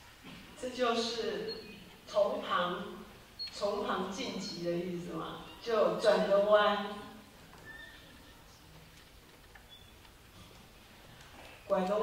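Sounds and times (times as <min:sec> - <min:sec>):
faint short squeak: 0:07.6 - 0:08.4.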